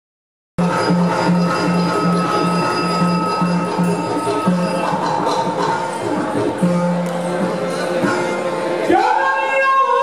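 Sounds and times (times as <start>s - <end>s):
high held drone note: 0.6s - 7.8s.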